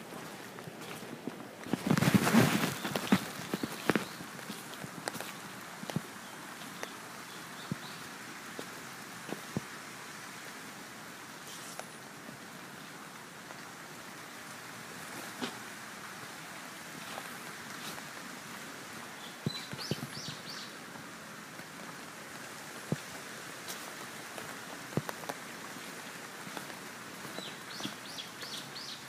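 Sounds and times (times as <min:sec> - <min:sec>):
footsteps on stone path: 0:00.0 - 0:06.9, 0:15.1 - 0:15.7, 0:17.0 - 0:18.3, 0:21.6 - 0:29.0
steady outdoor hiss: 0:00.0 - 0:29.0
bird chirping: 0:19.2 - 0:20.8.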